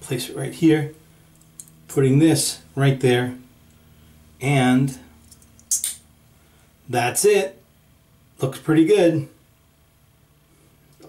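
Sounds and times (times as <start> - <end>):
sharp metallic clicks of razor cap: 5.3 - 6.0.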